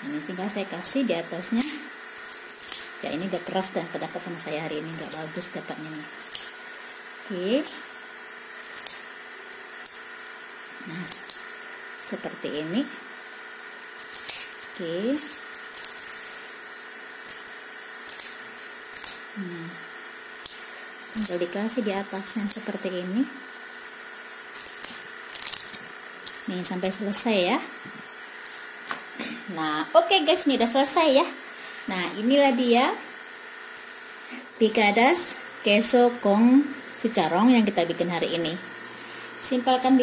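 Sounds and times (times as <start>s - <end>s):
faint steady hum: 0.0s - 40.0s
pork rind crackling: 1.4s - 6.7s, 7.3s - 12.0s, 13.5s - 22.8s, 23.5s - 26.7s.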